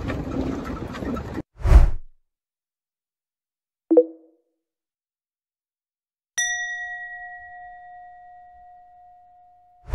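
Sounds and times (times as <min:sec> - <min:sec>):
bell ding: 0:06.4 - 0:09.8.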